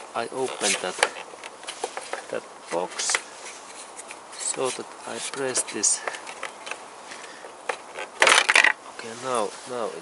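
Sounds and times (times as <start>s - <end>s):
plastic cover clattering: 7.7s - 8.8s.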